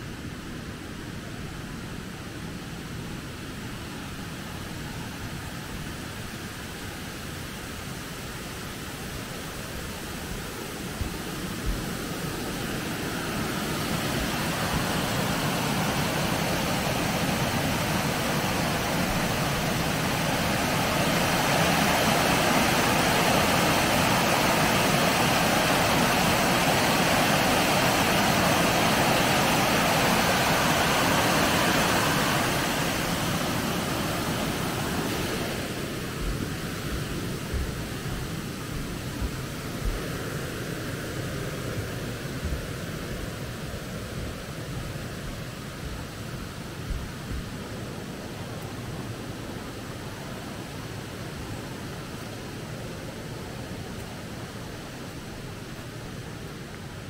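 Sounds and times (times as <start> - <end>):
water rushing over a weir: 0.0 - 57.0
soft low thumps: 36.2 - 40.0.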